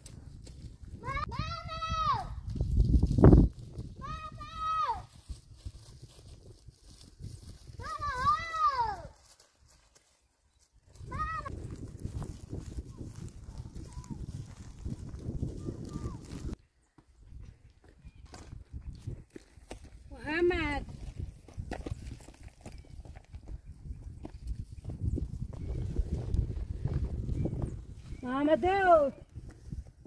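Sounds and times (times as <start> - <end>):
rough rustling: 2.4 - 16.6.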